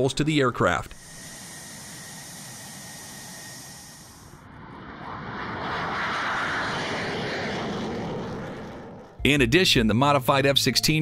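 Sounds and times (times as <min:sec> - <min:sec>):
jet engine running: 0:00.0 - 0:09.3
jet passing overhead: 0:00.9 - 0:09.3.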